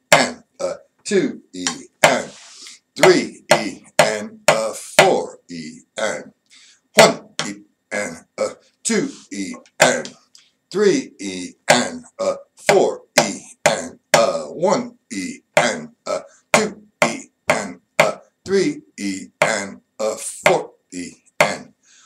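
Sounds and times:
person speaking: 0.0 - 6.4, 7.0 - 21.7
drumstick strokes on snare drum: 1.7 - 4.6.

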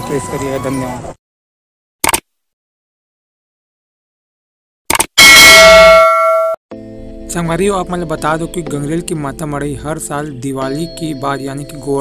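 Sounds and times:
bell ringing: 5.2 - 6.6.

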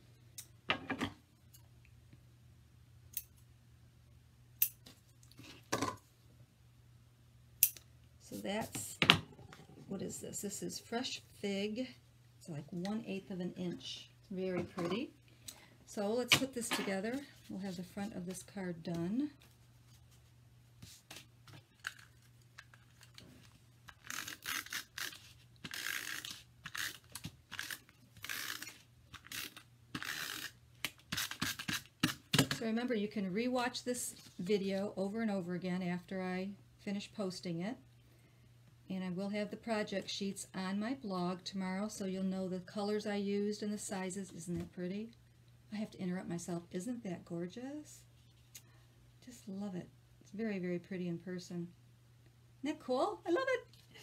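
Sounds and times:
tape runner raspy strokes: 23.9 - 32.2.

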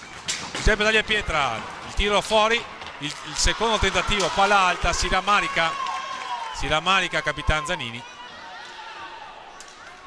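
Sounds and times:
steady murmur in sports hall: 0.0 - 10.0.

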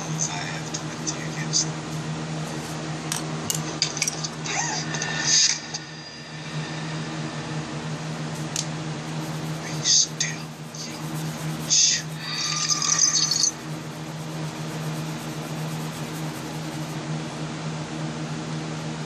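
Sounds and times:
steady low hum: 0.0 - 19.0
pencil scratching on paper: 9.1 - 17.0.

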